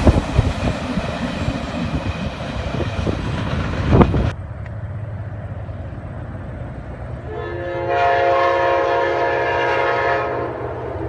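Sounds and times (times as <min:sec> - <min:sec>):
locomotive air horn chord: 0:07.3 - 0:11.0.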